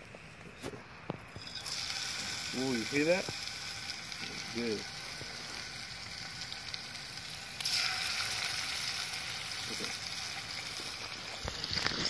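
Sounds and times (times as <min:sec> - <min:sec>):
fish sizzling in hot oil: 0:01.3 - 0:12.0.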